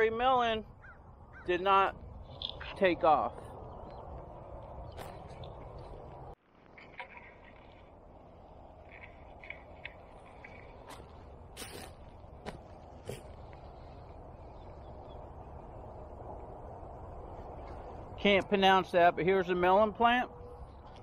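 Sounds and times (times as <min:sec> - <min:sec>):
wind rumble on microphone: 0:00.0 - 0:21.0
footsteps on wood-chip mulch: 0:03.3 - 0:06.7, 0:10.7 - 0:13.8.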